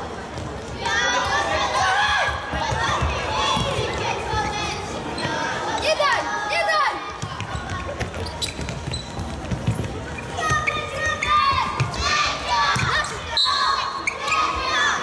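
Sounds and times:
children shouting: 10.4 - 15.0.

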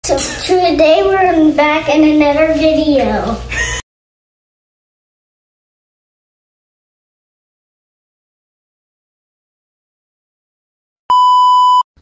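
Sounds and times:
electronic beep: 11.1 - 11.8.

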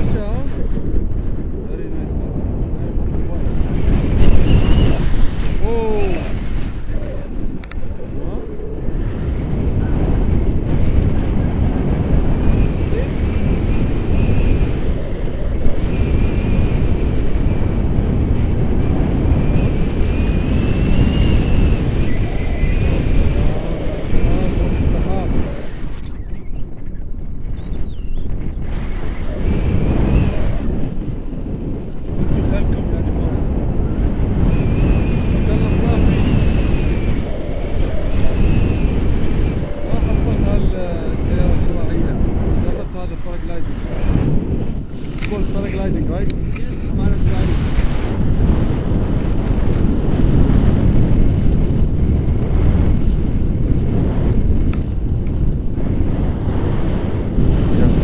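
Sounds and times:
wind buffeting microphone: 0.0 - 58.0.

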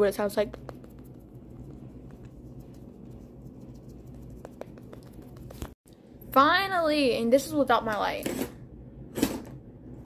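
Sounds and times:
low steady hum: 0.0 - 10.0
makeup brush rustling on skin: 0.1 - 5.8.

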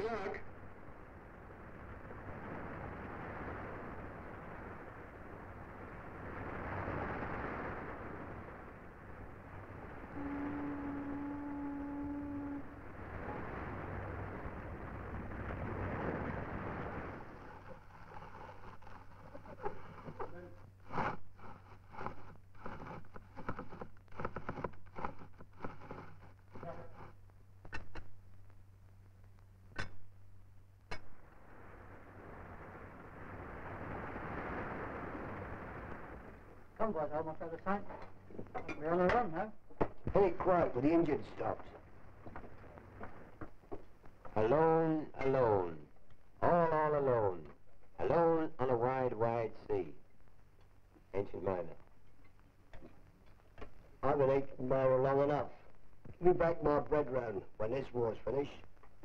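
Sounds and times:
sea wash: 0.0 - 20.8, 31.0 - 37.8
wind: 0.0 - 59.0
ship's whistle blast: 10.0 - 13.4.

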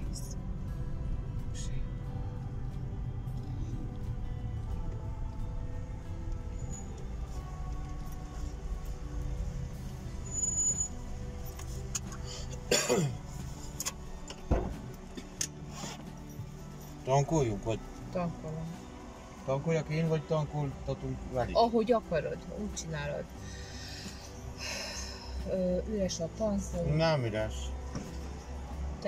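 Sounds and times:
car engine idling: 0.0 - 28.9
soft music: 0.0 - 29.0.

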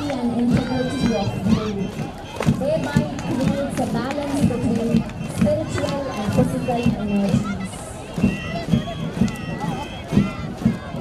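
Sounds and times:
low drum thumps marching time: 0.0 - 11.0
voices: 0.0 - 11.0.

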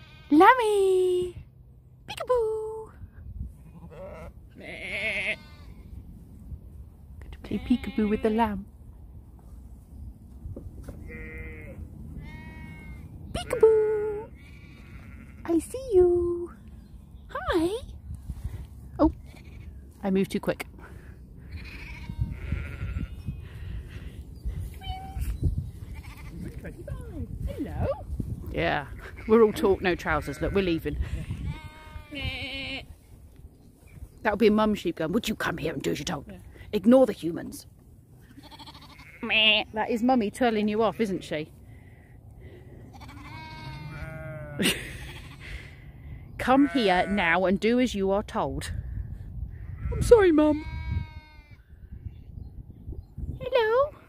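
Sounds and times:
sheep bleating: 0.0 - 0.6, 3.6 - 5.9, 7.4 - 8.5, 11.0 - 15.6, 21.4 - 23.5, 25.8 - 26.8, 28.8 - 32.9, 38.2 - 39.7, 42.9 - 45.6, 46.4 - 47.4, 49.8 - 51.6
wind rumble on microphone: 2.8 - 4.6, 5.4 - 15.0, 16.4 - 35.6, 48.2 - 54.0.

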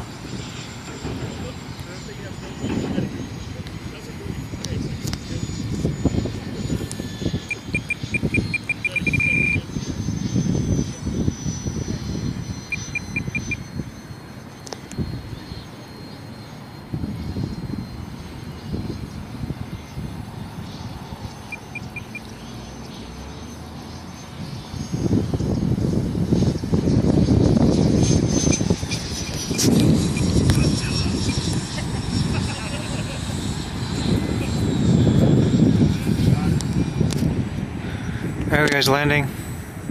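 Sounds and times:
gusty low rumble: 0.0 - 14.3, 16.8 - 23.2, 23.8 - 39.9
high fan whine: 0.0 - 39.9
rapid electronic beeps: 7.0 - 20.0, 21.2 - 24.7, 28.3 - 31.5.

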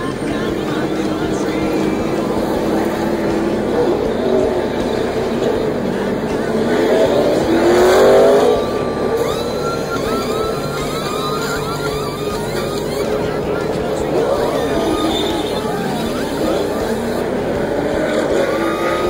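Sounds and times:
car accelerating past: 0.0 - 19.0
pneumatic impact wrenches whining: 0.0 - 19.0
race car engines: 0.0 - 19.0.

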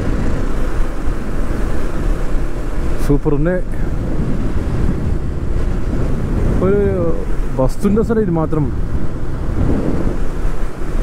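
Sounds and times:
motorcycle engine and road noise: 0.0 - 11.0
wind rushing over microphone: 0.0 - 11.0.

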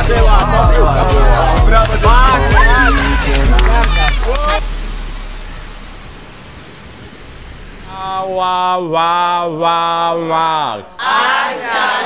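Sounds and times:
sea water washing: 3.0 - 8.9.

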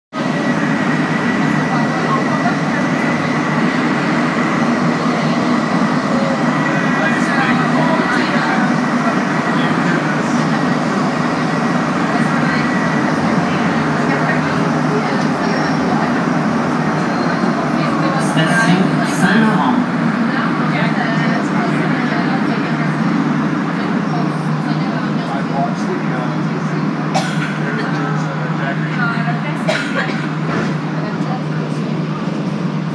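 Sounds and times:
train roaring through tunnel: 0.1 - 32.9
thin high whine: 17.0 - 20.4.

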